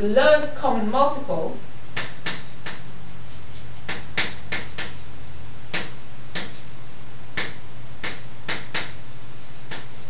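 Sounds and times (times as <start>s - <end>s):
steady low hum: 0.0s - 10.0s
chalk clicking on blackboard: 1.9s - 10.0s.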